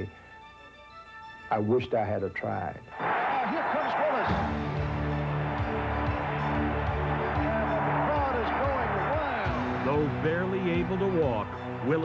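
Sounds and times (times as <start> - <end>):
background music with low held notes: 0.0 - 12.0.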